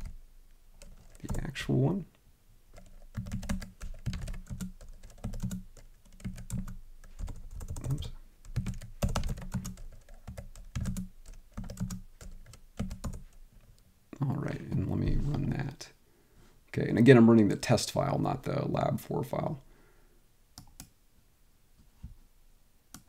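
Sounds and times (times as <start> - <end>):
computer keyboard typing: 0.8 - 1.5, 2.7 - 13.4, 20.6 - 20.9.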